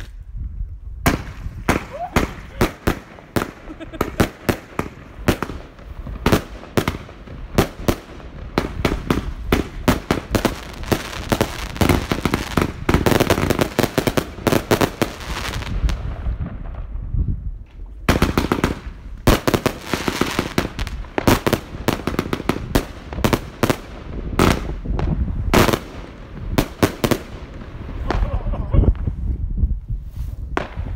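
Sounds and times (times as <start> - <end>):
fireworks shots and bursts: 1.0 - 29.6, 30.4 - 30.9.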